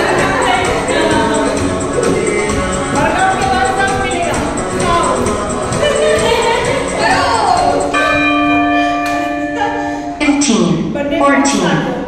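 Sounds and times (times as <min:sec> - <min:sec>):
music: 0:00.0 - 0:12.0
bell chime ringing: 0:07.8 - 0:10.4.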